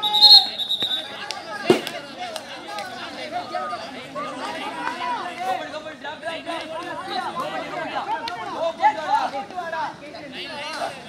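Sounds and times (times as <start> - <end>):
many voices chattering and calling: 0.0 - 11.0.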